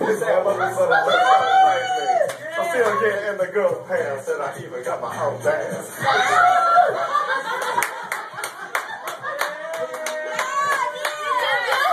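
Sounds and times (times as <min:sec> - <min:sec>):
hand clapping: 0:02.3 - 0:03.0, 0:07.6 - 0:11.9.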